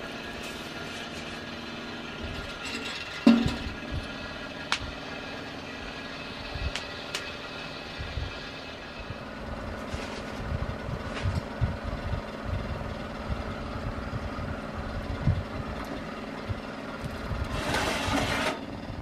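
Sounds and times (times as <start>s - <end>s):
steady hum: 0.0s - 19.0s
metal clank with ring: 2.4s - 3.8s.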